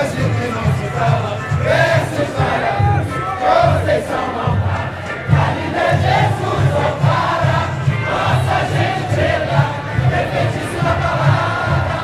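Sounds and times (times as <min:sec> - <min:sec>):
crowd singing together: 0:00.0 - 0:12.0
samba drums beating: 0:00.0 - 0:12.0.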